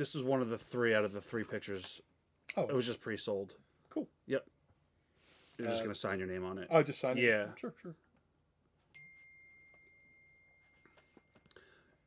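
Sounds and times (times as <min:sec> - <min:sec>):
soft high chime: 0:08.8 - 0:12.0.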